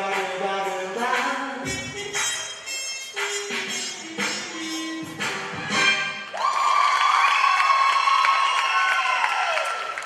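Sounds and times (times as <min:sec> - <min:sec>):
music: 0:00.0 - 0:06.4
audience applauding and cheering: 0:06.2 - 0:10.0
long high-pitched cheer: 0:06.3 - 0:10.0.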